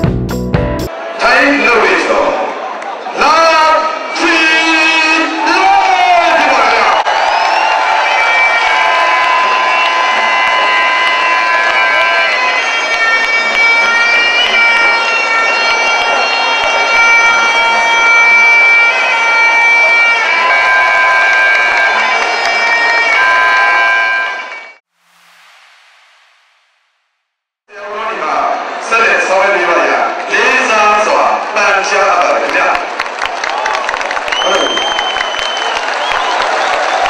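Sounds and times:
crowd noise: 0.8s - 24.8s, 27.7s - 37.0s
shrill reed wind instrument: 8.1s - 24.8s.

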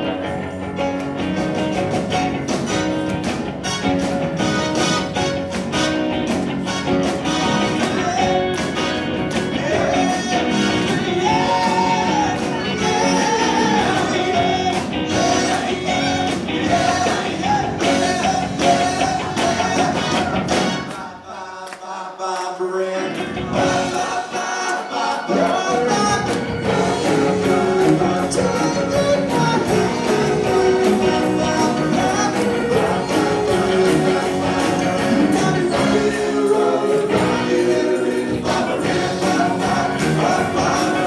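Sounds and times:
drums: 0.0s - 21.1s, 23.1s - 41.0s
electric guitars: 0.0s - 21.1s, 22.9s - 41.0s
live rock band: 0.0s - 21.2s, 23.0s - 41.0s
keyboard: 0.0s - 21.3s, 22.8s - 41.0s
group vocal harmonies: 6.6s - 41.0s
person singing: 9.5s - 20.4s, 21.0s - 41.0s.

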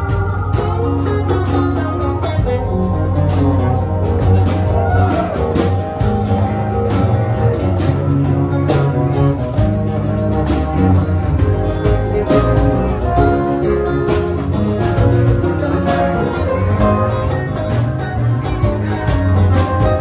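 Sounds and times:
live blues band: 0.0s - 20.0s.

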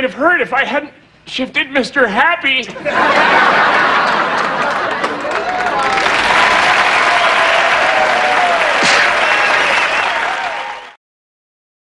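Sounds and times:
audience applauding and cheering: 3.8s - 11.0s.

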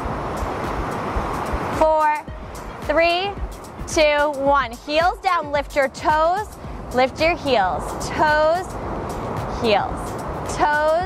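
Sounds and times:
surf washing up beach: 0.0s - 3.9s
faint music beat: 0.0s - 11.0s.

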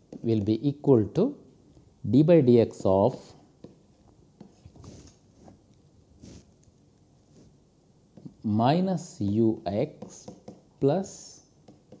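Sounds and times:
pen scratching on paper: 6.2s - 6.5s.

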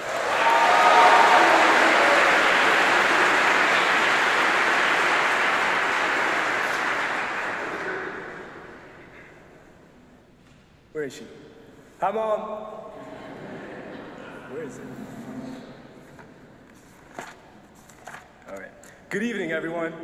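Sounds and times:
audience applauding: 0.0s - 9.0s.

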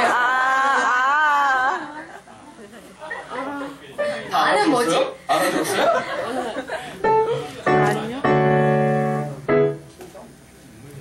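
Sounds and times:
held musical note: 7.1s - 9.9s.

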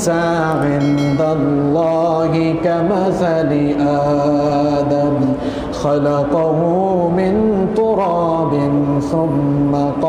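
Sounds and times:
man chanting melodic recitation: 0.0s - 10.0s.

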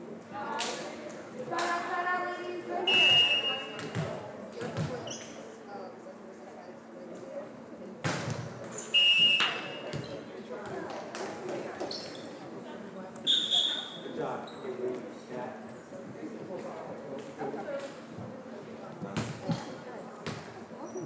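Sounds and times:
murmur of voices echoing: 0.0s - 21.0s
shoe squeaks: 5.0s - 5.4s, 8.7s - 10.2s, 11.8s - 12.4s, 13.2s - 14.7s.

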